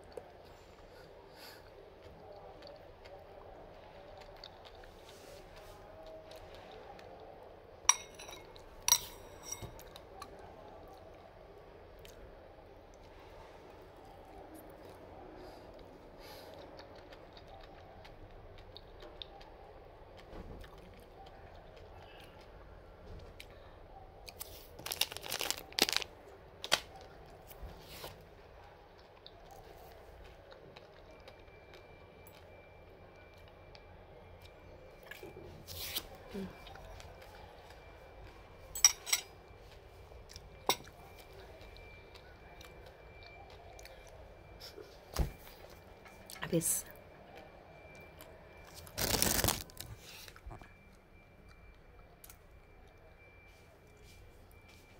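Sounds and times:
low background hum: 0.0s - 54.9s
fork clinking against ceramic bowl: 7.9s - 9.8s.

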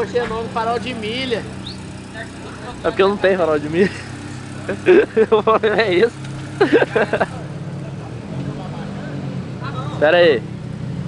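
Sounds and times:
car engine idling: 0.0s - 10.8s.

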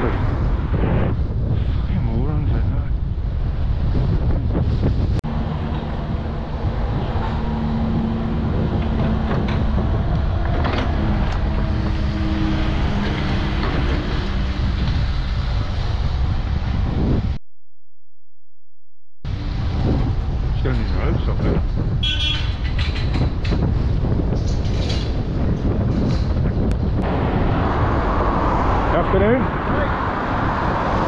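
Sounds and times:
low road rumble: 0.0s - 17.4s, 19.3s - 31.0s
wind buffeting microphone: 0.0s - 17.4s, 19.3s - 31.0s.

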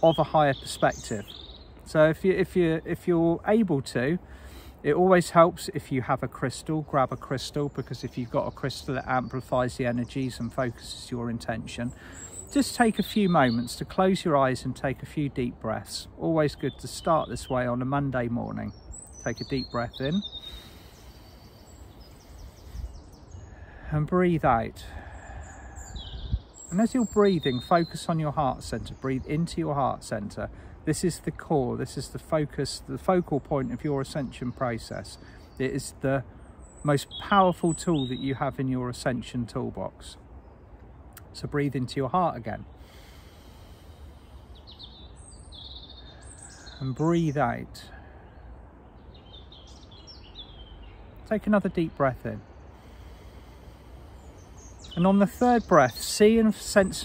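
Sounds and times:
birds chirping: 0.0s - 57.0s.

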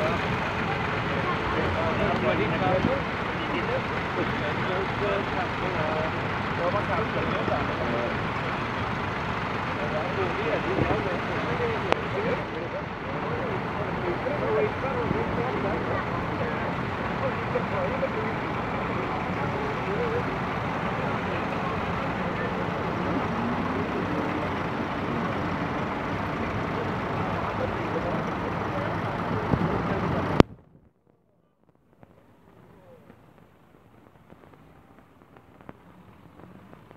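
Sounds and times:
tractor engines running: 0.0s - 36.9s
voices: 0.0s - 36.9s.

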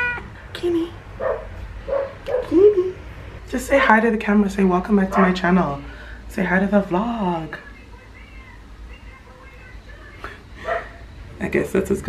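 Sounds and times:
dog barking faintly: 10.6s - 11.0s.

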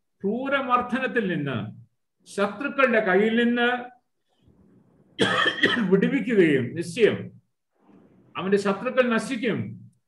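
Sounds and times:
man coughing: 5.2s - 6.2s.

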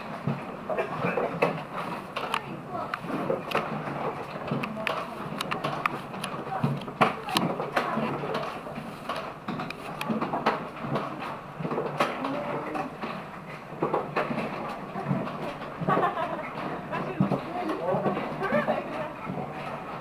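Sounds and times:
sled running on steel track: 0.0s - 20.0s
wheels clattering on rails: 0.0s - 20.0s
voices: 2.1s - 10.4s, 12.0s - 13.2s, 14.0s - 20.0s.

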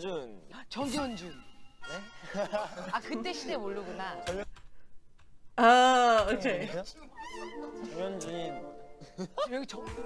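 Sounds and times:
light background music: 0.8s - 4.5s, 6.2s - 10.0s.

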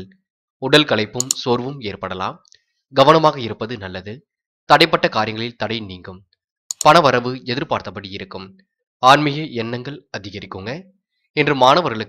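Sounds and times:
person narrating: 0.9s - 1.8s
mouse-click sound effects: 1.2s - 1.5s, 6.7s - 7.0s.

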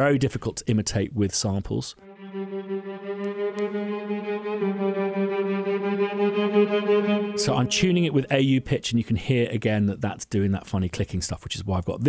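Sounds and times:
pulsing string ensemble: 2.0s - 8.7s.

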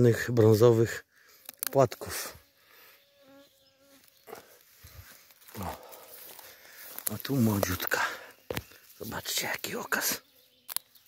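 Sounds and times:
flying insect buzzing: 1.5s - 6.4s
rustling through grass: 3.5s - 9.9s.

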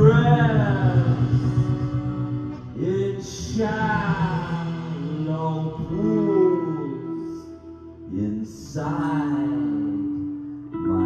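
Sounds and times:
acoustic guitar: 0.0s - 11.0s
male singer: 0.0s - 11.0s
sustained instrumental drone: 0.0s - 11.0s.

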